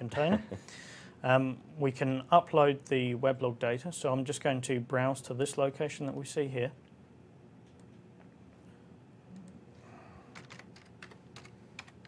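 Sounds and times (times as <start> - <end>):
faint keyboard typing: 10.2 - 12.0.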